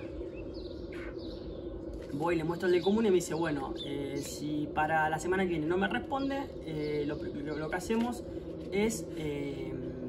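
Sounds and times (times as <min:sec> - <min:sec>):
bird chirps: 0:00.0 - 0:09.6
low background rumble: 0:00.0 - 0:10.0.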